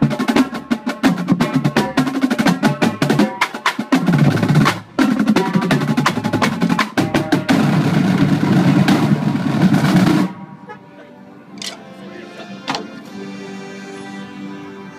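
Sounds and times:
marching drumline playing: 0.0 - 10.7.

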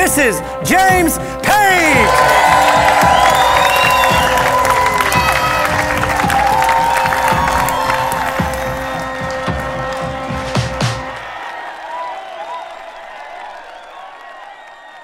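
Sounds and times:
music: 0.0 - 11.8
people clapping and cheering: 1.4 - 15.0.

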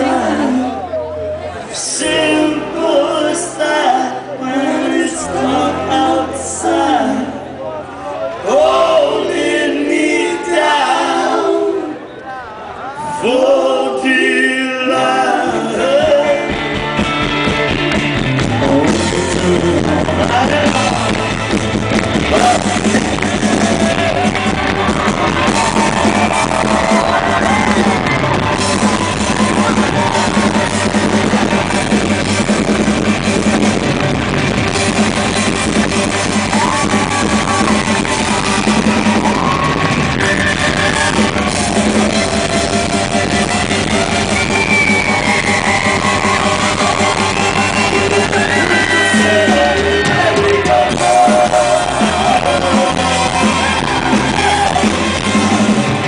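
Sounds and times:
drums: 15.0 - 56.0
electric guitars: 15.0 - 56.0
live rock band playing: 15.0 - 56.0.

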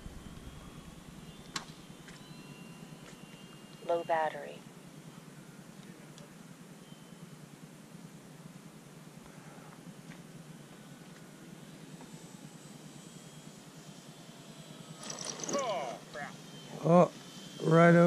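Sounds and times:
model airplane motor whine: 0.0 - 18.0
outdoor background noise: 0.0 - 18.0.

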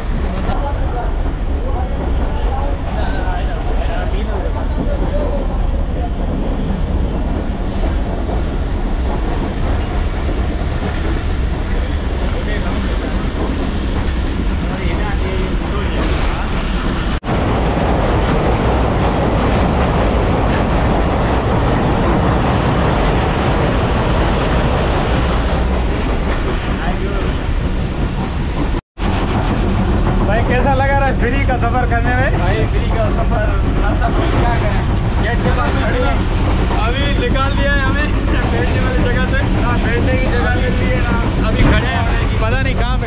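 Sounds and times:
train carriage rumbling on rails: 0.0 - 43.0.

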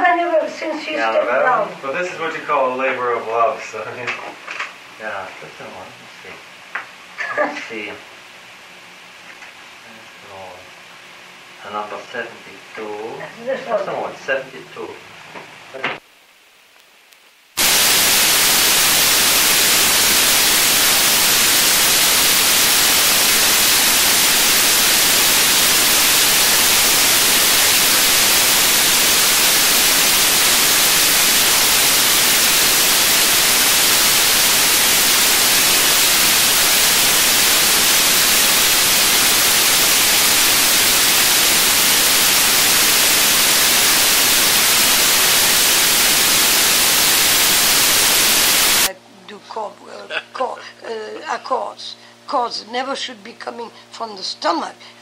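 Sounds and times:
loud static hiss: 0.0 - 49.6.

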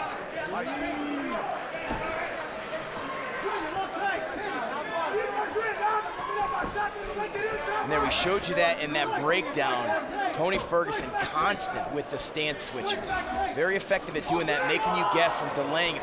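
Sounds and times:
crowd talking and shouting: 0.0 - 16.0.

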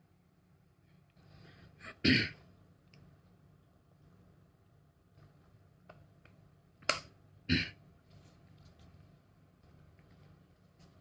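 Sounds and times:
man clearing his throat: 1.9 - 2.4, 7.5 - 7.8.

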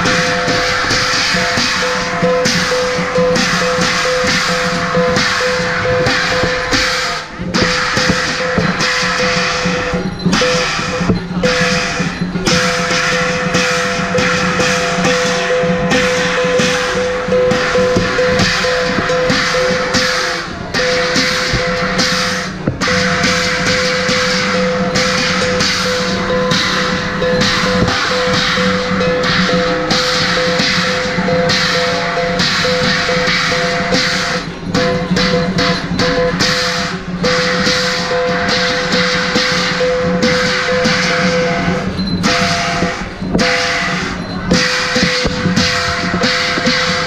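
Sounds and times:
drum and cymbals percussion: 0.0 - 47.0
sustained ringing tone: 0.0 - 47.0.

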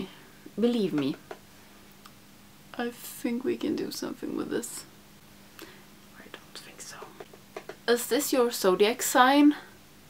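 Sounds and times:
woman speaking: 0.0 - 1.2, 2.8 - 4.9, 7.9 - 9.7
faint whispering: 6.1 - 7.3.

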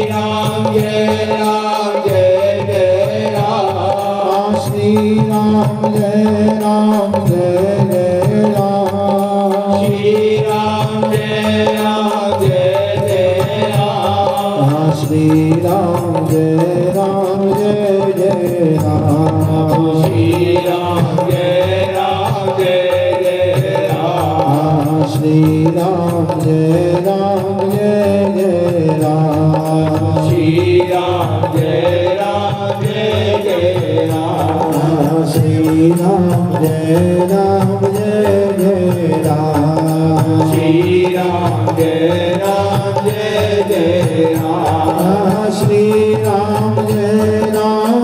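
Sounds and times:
men singing hymn through microphones: 0.0 - 48.0
rhythmic accompaniment: 0.0 - 48.0.

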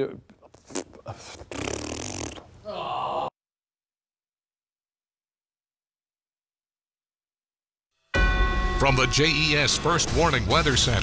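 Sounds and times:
man sighing: 2.6 - 3.3.

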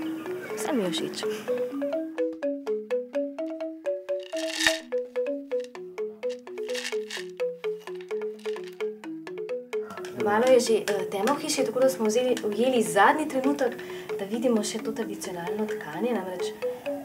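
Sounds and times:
pitched percussion melody: 1.4 - 17.0.

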